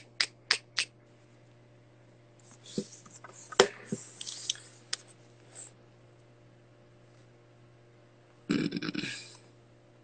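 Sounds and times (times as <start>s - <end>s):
rough throaty vocal sound: 8.5s - 9.4s.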